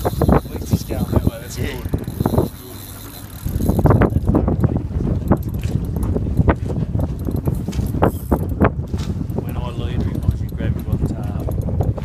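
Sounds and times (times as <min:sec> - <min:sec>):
fishing reel clicking and grinding: 0:00.0 - 0:12.0
low rumbling wind: 0:00.0 - 0:12.0.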